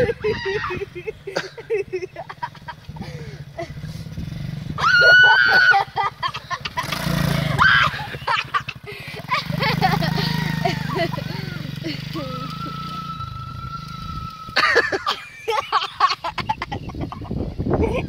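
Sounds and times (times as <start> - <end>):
pit bike engine: 0.0 - 18.0.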